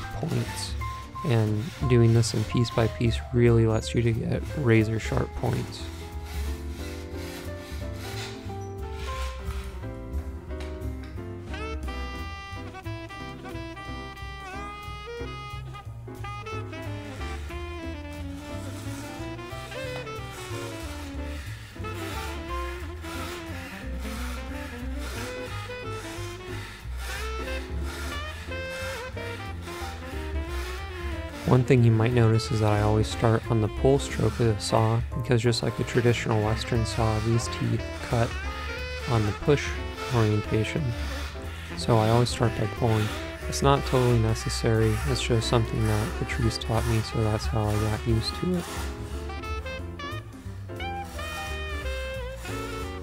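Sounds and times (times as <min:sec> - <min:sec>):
fret saw rasping through wood: 0:00.0 - 0:53.0
instrumental background music: 0:00.0 - 0:53.0.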